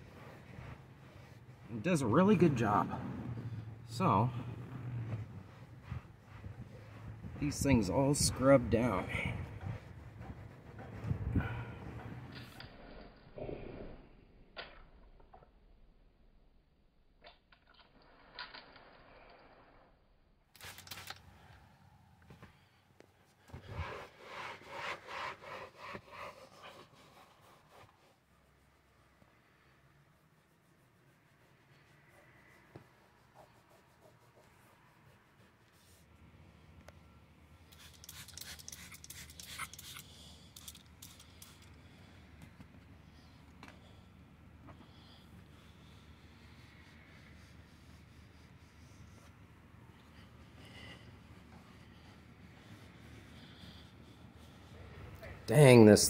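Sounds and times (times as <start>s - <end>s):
towel scrubbing car seats: 0.0s - 12.1s, 23.4s - 29.3s.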